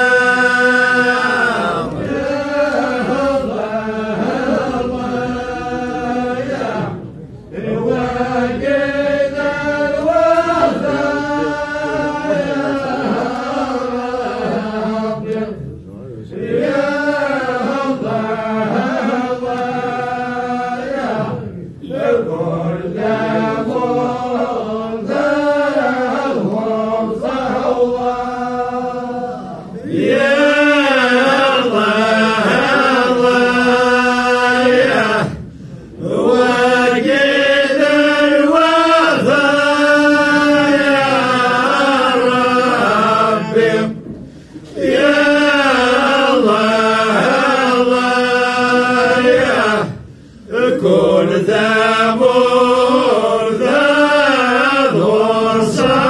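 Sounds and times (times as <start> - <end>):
voices chanting together: 0.0 - 56.0.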